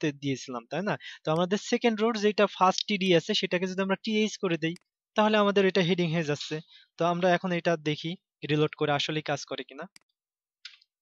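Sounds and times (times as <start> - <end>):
computer mouse click: 9.9 - 10.9.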